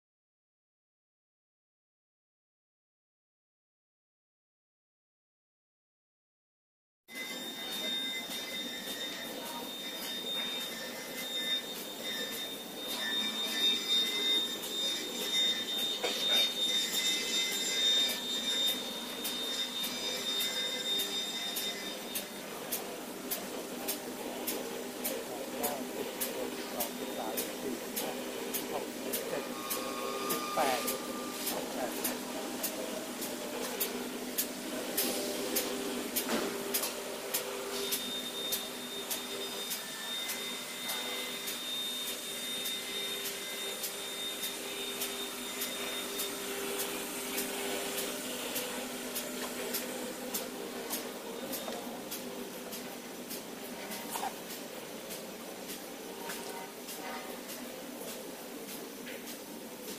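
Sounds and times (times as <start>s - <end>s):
factory machinery whine and hum: 7.1s - 59.9s.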